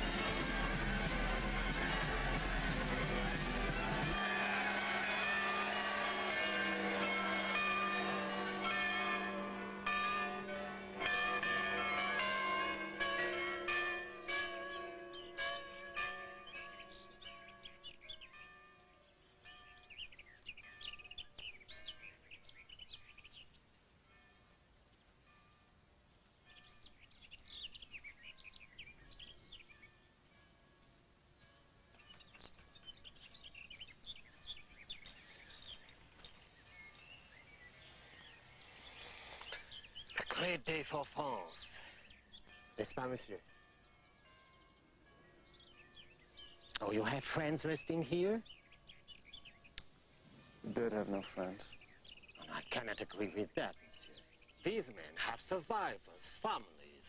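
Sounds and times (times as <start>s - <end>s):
church bells pealing: 0.0s - 22.3s, 25.2s - 25.7s, 39.6s - 49.6s, 50.3s - 57.0s
songbird chirping and warbling: 14.5s - 24.2s, 25.0s - 57.0s.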